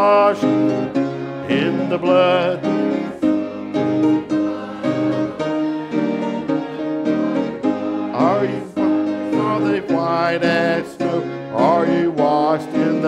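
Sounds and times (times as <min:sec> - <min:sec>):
man singing lead: 0:00.0 - 0:00.8, 0:01.4 - 0:03.4, 0:08.1 - 0:13.0
congregation singing a hymn: 0:00.0 - 0:13.0
piano chords: 0:00.0 - 0:13.0.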